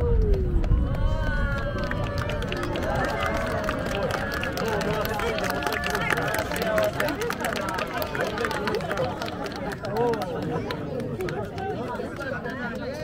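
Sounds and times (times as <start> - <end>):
crowd talking and exclaiming: 0.0 - 13.0.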